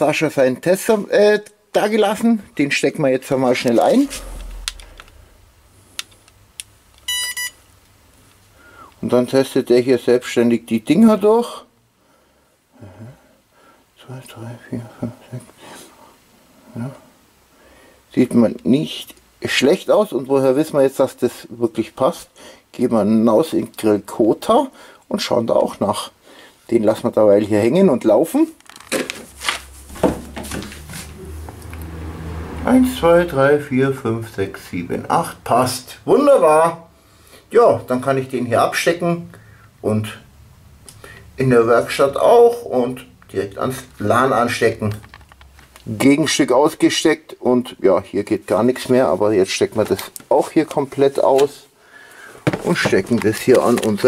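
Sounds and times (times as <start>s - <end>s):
low steady hum: 2.4s - 9.3s
double electronic beep: 7.1s - 7.7s.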